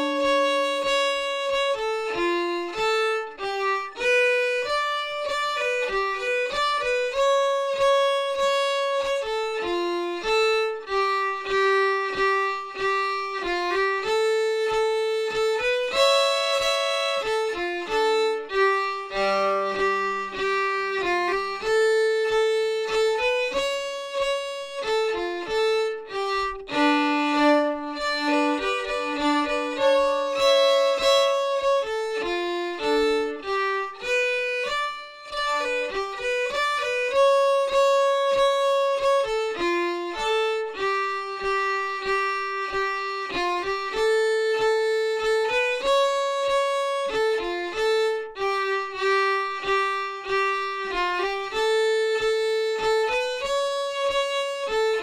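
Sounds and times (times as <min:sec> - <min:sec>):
solo fiddle playing folk tune: 0:00.0 - 0:55.0.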